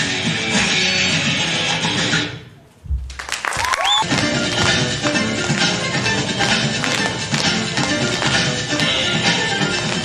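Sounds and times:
low thump: 2.8 - 3.7
guitar dance music: 2.9 - 10.0
audience applause: 3.1 - 4.7
cheer or whoop: 3.5 - 4.1.

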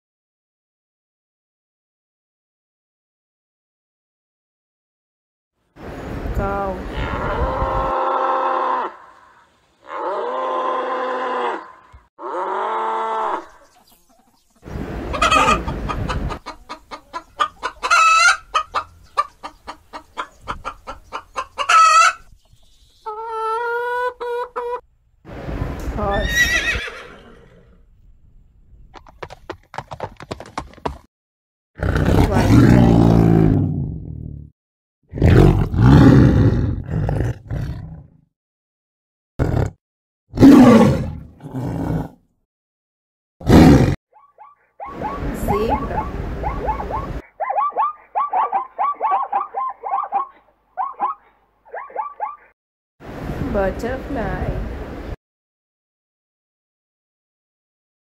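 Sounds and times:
cow mooing: 9.8 - 13.6
chicken clucking: 13.3 - 24.8
horse neighing: 26.0 - 27.8
big cat roaring: 31.8 - 34.2, 35.1 - 38.2, 39.4 - 39.8, 40.4 - 42.2, 43.4 - 44.0.

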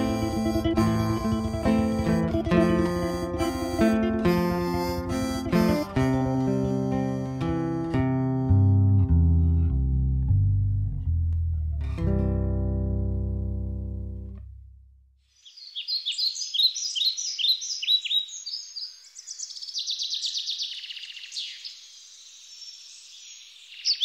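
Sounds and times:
acoustic guitar and bass chord: 0.0 - 15.0
songbirds chirping: 15.3 - 24.0.

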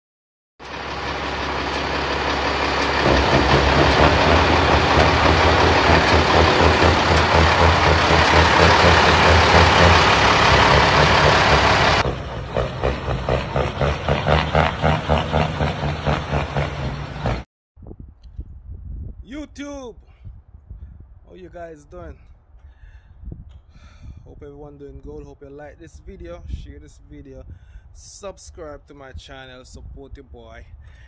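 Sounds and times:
diesel truck engine running: 0.6 - 17.4.

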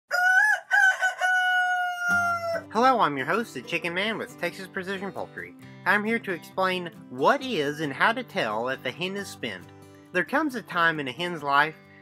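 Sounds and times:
rooster crowing: 0.1 - 2.7.

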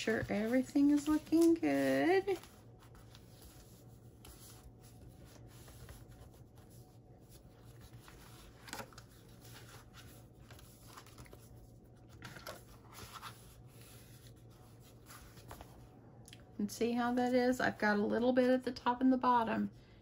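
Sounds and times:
hands rustling paper pages: 0.0 - 15.9
low steady hum: 0.0 - 20.0.

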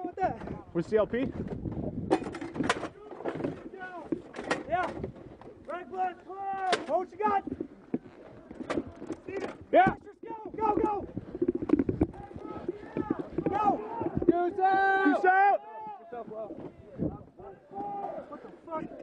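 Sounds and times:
men shouting: 12.3 - 16.0.

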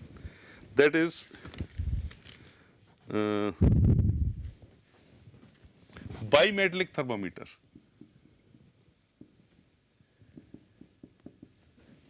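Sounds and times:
marker pen writing on whiteboard: 6.3 - 12.0.

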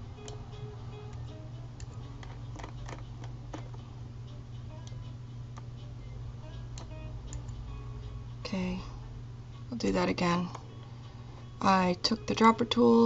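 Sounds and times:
faint background music: 0.0 - 13.0
steady low hum: 0.0 - 13.0.

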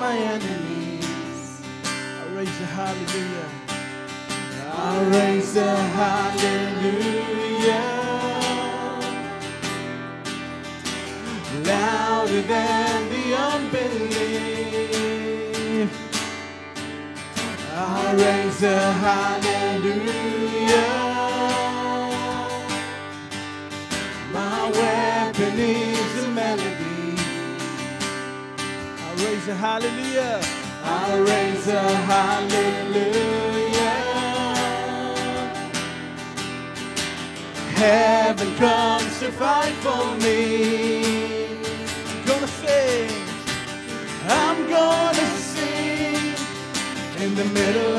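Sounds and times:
people singing: 0.0 - 1.8, 4.5 - 10.0, 11.2 - 16.2, 17.5 - 23.2, 24.0 - 28.3, 30.6 - 36.1, 37.6 - 47.9
worship band playing: 0.0 - 36.4, 37.4 - 47.9
strummed acoustic guitar: 0.0 - 47.9.

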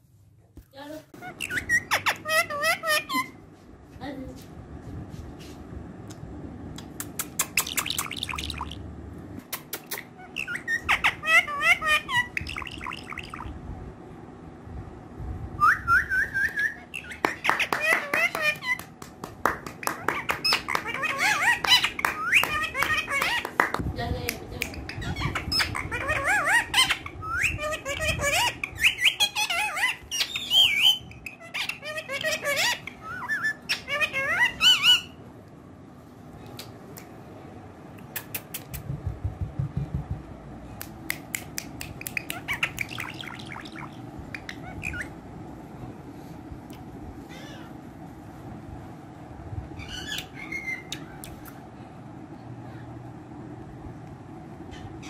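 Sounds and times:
parakeet chattering and squawking: 1.1 - 3.4, 7.0 - 8.8, 9.5 - 13.6, 16.6 - 19.0, 19.8 - 23.7, 24.6 - 35.2, 41.4 - 45.2, 47.3 - 47.8, 49.8 - 51.5.

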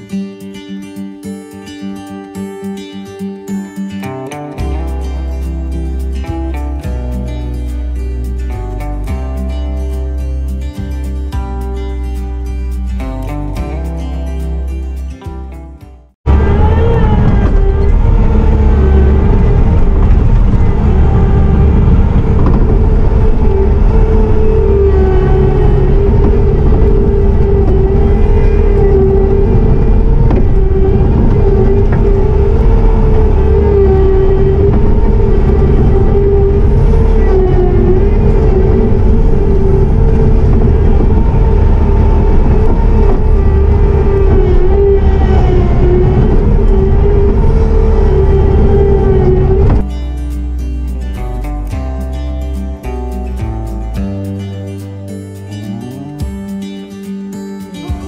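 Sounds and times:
diesel engine and hydraulics running: 16.3 - 54.0.

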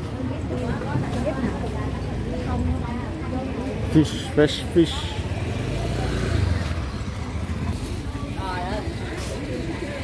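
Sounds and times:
motor scooter passing: 0.8 - 10.0.

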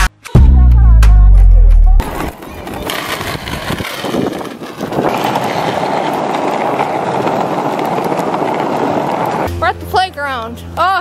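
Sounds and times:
skateboard wheels rolling on asphalt: 2.0 - 10.5.

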